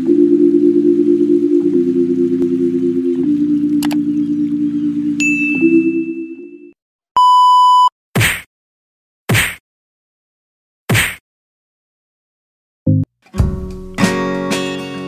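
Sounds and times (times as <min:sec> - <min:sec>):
synth chords jingle: 0:00.0 - 0:06.8
click: 0:03.7 - 0:04.0
bell-like notification ding: 0:05.2 - 0:06.4
electronic beep: 0:05.2 - 0:06.5, 0:07.2 - 0:07.9.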